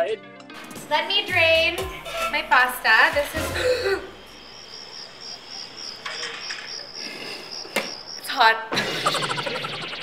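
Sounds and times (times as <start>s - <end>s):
high chirping pulse: 9.0s - 10.0s.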